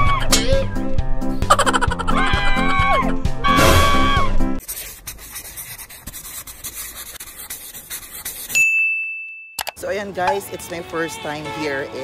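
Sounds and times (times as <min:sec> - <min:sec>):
scratchy brushing noise: 0:04.6 - 0:08.6
bright ding: 0:08.6 - 0:09.8.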